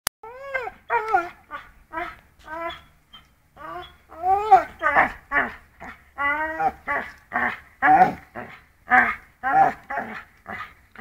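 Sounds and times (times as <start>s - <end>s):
dog whining: 0.2s - 5.5s.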